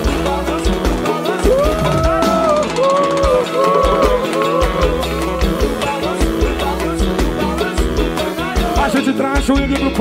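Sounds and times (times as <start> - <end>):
bending lead melody: 0.0 - 9.3
band playing: 0.0 - 10.0
kick drum and bass beat: 0.0 - 10.0.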